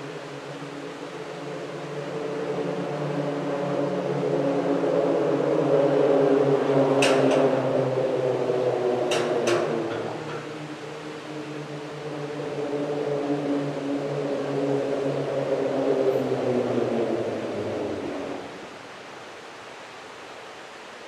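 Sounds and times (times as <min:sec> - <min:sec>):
tyres humming on grid bridge deck: 0:00.0 - 0:21.0.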